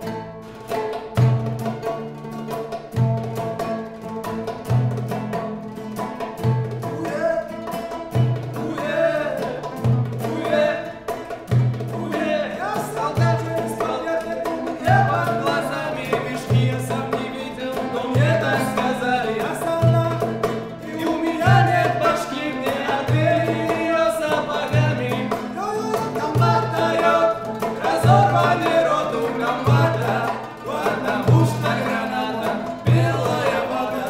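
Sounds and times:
oud guitar and hand drum playing: 0:00.0 - 0:34.0
men singing: 0:06.8 - 0:34.0.

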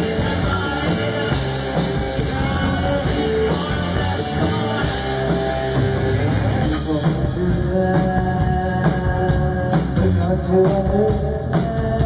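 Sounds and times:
drum and cymbal hits: 0:00.0 - 0:12.0
electric guitar: 0:00.0 - 0:12.0.

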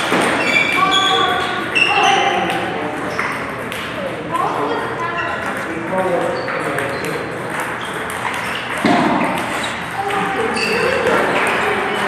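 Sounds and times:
table tennis balls clicking: 0:00.0 - 0:12.0.

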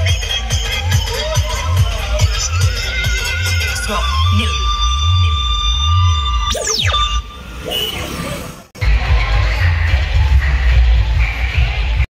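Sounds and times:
electronic dance music: 0:00.0 - 0:08.1, 0:08.8 - 0:12.0.

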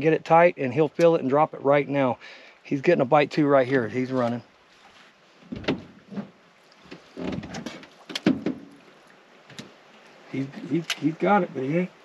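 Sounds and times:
knocks in aluminium boat: 0:05.4 - 0:08.8.

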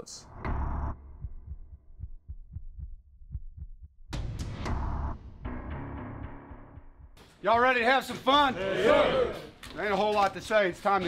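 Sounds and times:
heartbeat thuds: 0:00.4 - 0:05.2, 0:06.5 - 0:07.2.

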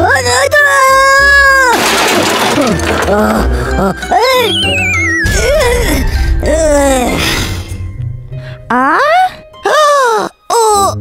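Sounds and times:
wood breaking crash: 0:01.6 - 0:03.8.

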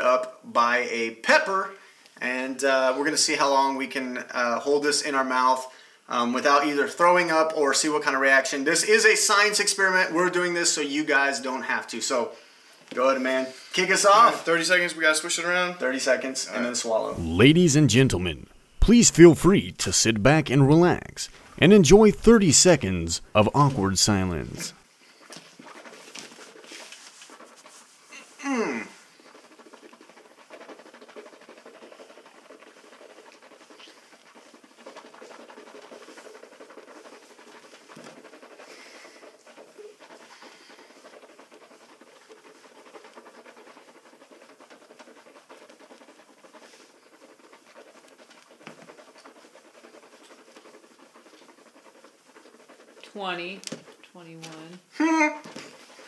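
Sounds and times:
breathing through nose: 0:05.7 - 0:06.1
muffled vocal sound: 0:17.2 - 0:24.7
mouthwash swishing: 0:17.2 - 0:24.8.

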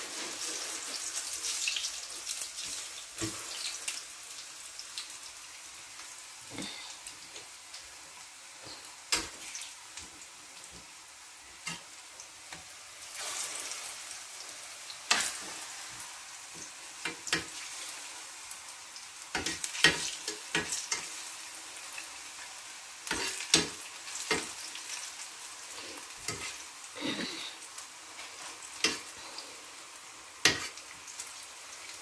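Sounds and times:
food sizzling in oil: 0:00.0 - 0:32.0
spatula scraping a pan: 0:23.1 - 0:25.0, 0:25.9 - 0:27.3.

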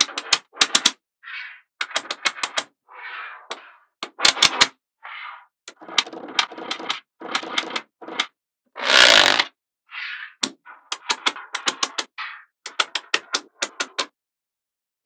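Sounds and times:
magnetic balls clicking: 0:00.0 - 0:01.0, 0:01.8 - 0:02.7, 0:05.7 - 0:08.3, 0:10.4 - 0:14.1
card scraping under magnets: 0:04.4 - 0:14.1.

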